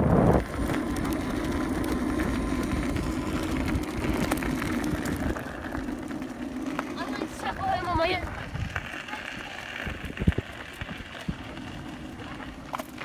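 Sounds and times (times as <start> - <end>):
wind on microphone: 0.0 - 0.7, 7.6 - 8.9, 9.8 - 11.4
wheel rolling over gravel: 0.0 - 13.0.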